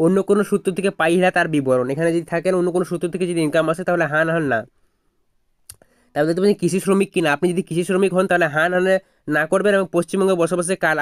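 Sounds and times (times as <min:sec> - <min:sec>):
man's voice: 0:00.0 - 0:04.7, 0:06.2 - 0:11.0.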